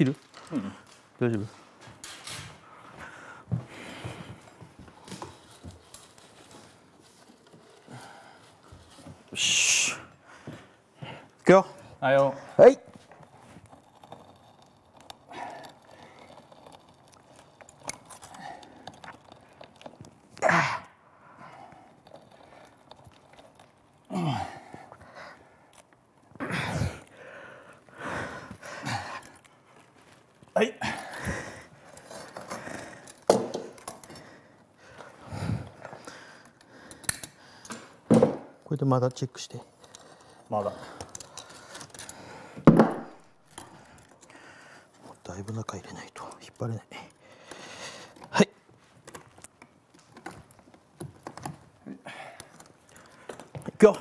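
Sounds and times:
men grunting and breathing hard: 20.4s - 22.8s, 24.0s - 25.6s, 26.3s - 29.5s, 30.5s - 37.9s, 51.8s - 53.7s.

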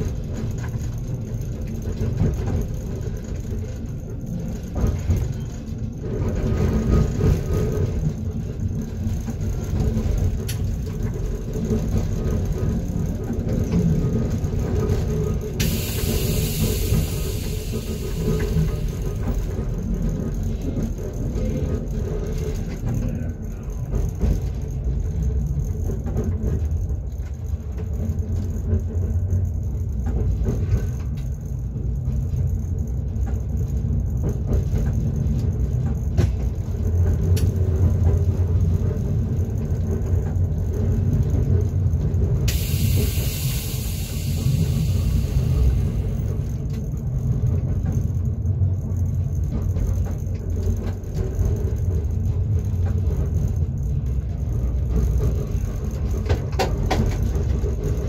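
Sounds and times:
train wheels rumbling on track: 0.0s - 58.0s
high hiss: 15.6s - 19.0s, 42.5s - 46.2s.

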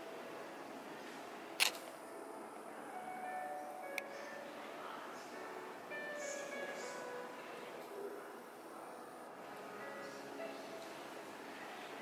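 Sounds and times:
faint sustained tones: 0.0s - 12.0s
sharp click: 1.6s - 1.9s.

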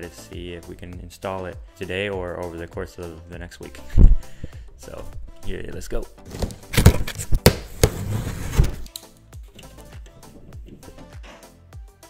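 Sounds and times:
background music with steady beat: 0.0s - 12.0s
cardboard box being ripped open: 6.3s - 8.9s.

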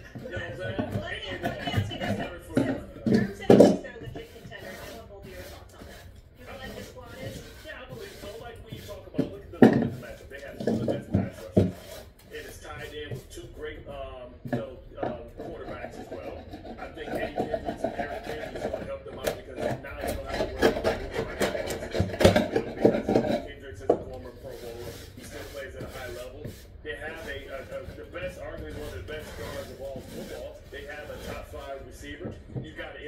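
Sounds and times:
hand tool rubbing wooden board: 0.0s - 33.0s
man talking: 6.4s - 33.0s.

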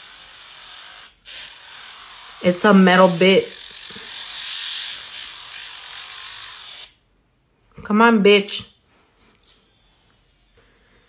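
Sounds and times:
electric nail drill filing: 0.0s - 7.0s, 9.4s - 11.0s.

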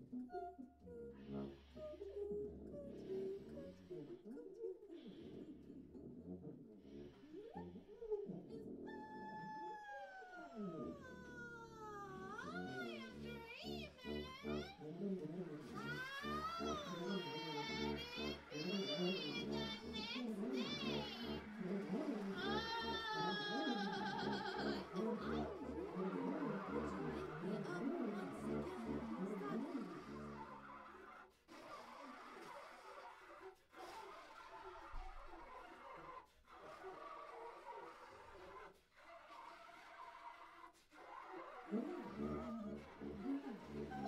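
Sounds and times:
large ensemble improvising: 12.8s - 30.6s
wailing high glides: 15.6s - 30.6s.

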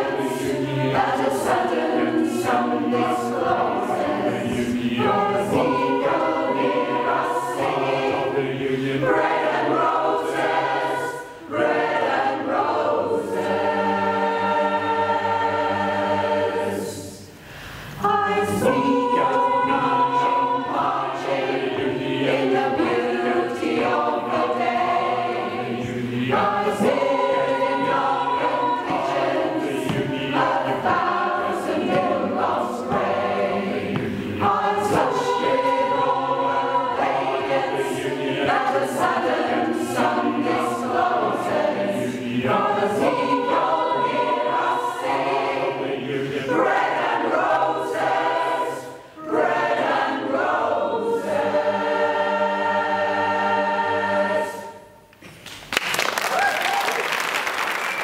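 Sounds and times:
choir singing in harmony: 0.0s - 55.2s
audience applause: 55.5s - 58.0s.

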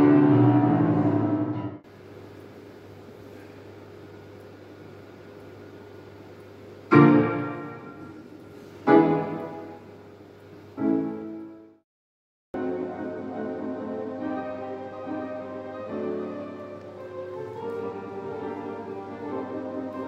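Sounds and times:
piano chords ringing: 0.0s - 1.9s, 6.9s - 11.8s, 12.6s - 20.0s
piano passage: 0.0s - 1.9s, 6.9s - 10.1s, 10.7s - 11.8s, 12.6s - 20.0s
faint steady hum: 0.0s - 11.8s, 12.6s - 20.0s.

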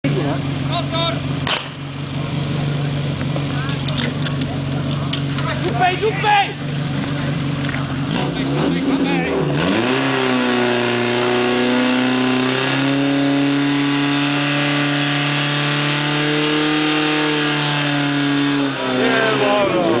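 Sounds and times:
pump engine running at high revs: 0.0s - 20.0s.

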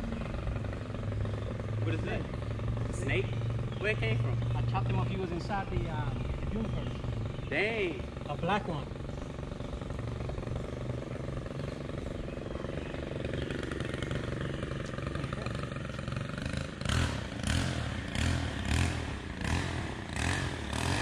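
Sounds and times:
engine running in rhythmic surges: 0.0s - 21.0s.

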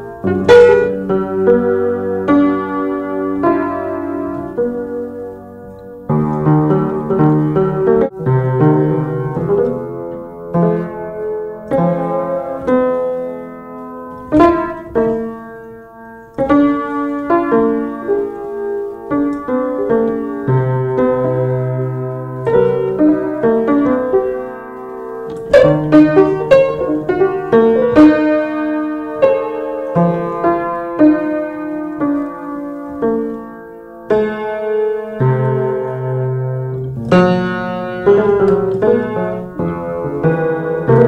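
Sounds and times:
piano music: 0.0s - 41.0s.

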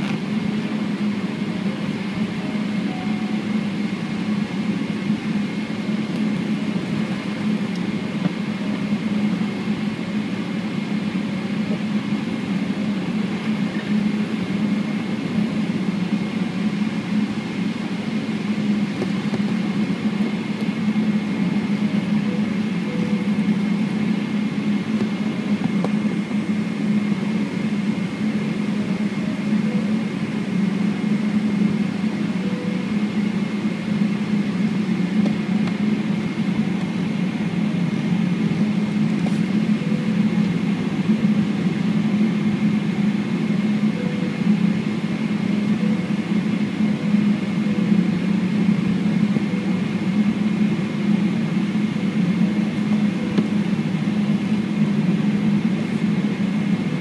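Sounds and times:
aircraft cabin engine hum: 0.0s - 57.0s
faint high whine: 0.0s - 57.0s.

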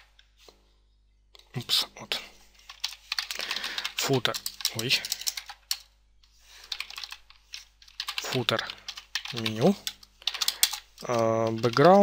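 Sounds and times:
keyboard typing: 2.6s - 5.9s, 6.6s - 12.0s.

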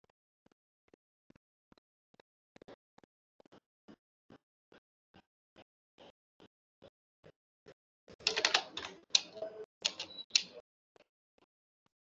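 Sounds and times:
computer keyboard typing: 8.2s - 10.5s.

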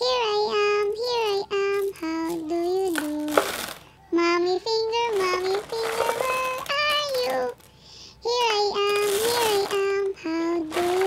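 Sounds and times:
child singing: 0.0s - 3.5s, 4.1s - 7.6s, 8.2s - 11.0s.

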